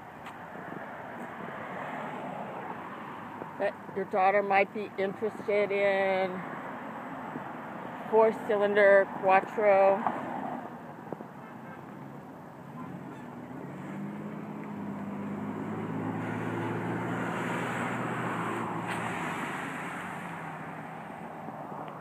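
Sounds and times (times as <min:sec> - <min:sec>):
vehicle passing by: 0:00.9 - 0:03.7, 0:12.6 - 0:22.0.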